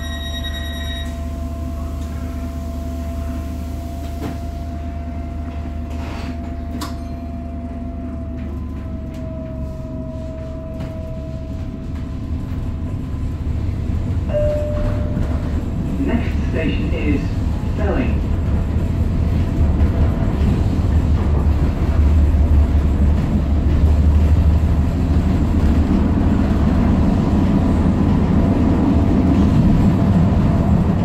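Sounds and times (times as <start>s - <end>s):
train car interior hum: 0.0s - 31.0s.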